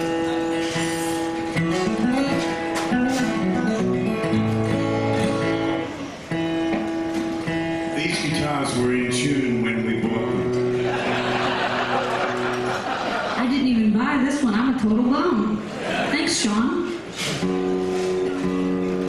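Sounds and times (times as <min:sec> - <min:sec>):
acoustic guitars playing: 0:00.0 - 0:19.0.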